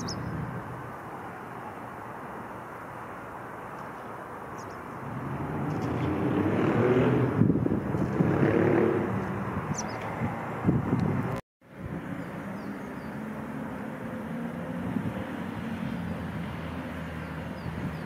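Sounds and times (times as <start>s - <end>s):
bird chirps: 0.0s - 0.5s, 4.5s - 4.9s, 9.7s - 10.1s
distant traffic: 0.0s - 18.0s
road vehicle passing: 0.0s - 18.0s.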